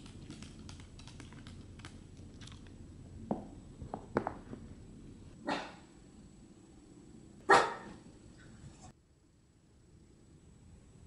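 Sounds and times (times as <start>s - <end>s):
small dog barking: 5.4s - 5.8s, 7.5s - 8.0s.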